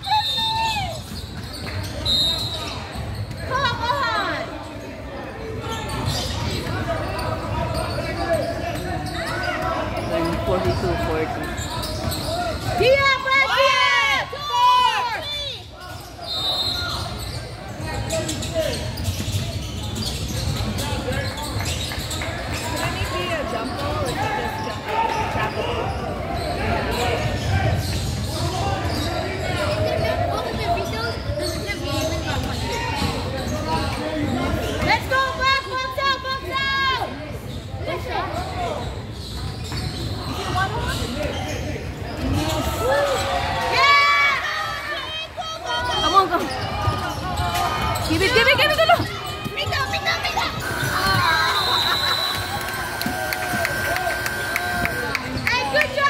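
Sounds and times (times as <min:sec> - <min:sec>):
chatter and calls of people: 0:00.0 - 0:56.0.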